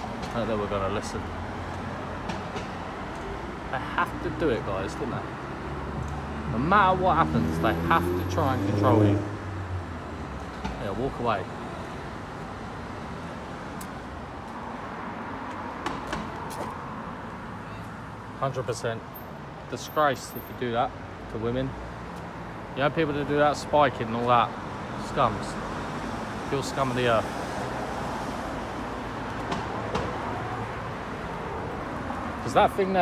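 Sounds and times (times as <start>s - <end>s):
road traffic hum: 0.0s - 33.0s.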